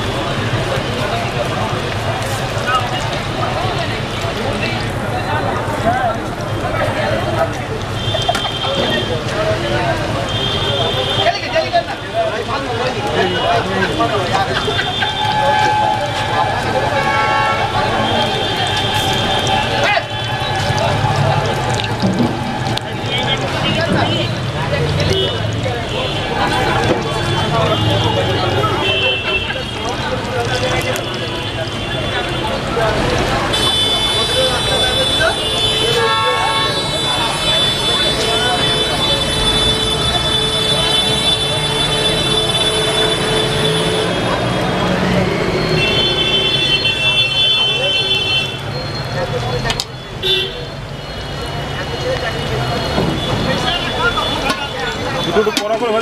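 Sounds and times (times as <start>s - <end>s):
fritters deep-frying in oil: 0.0s - 56.0s
voices: 0.0s - 56.0s
vehicle horns: 7.9s - 9.4s, 10.0s - 11.9s, 13.1s - 56.0s.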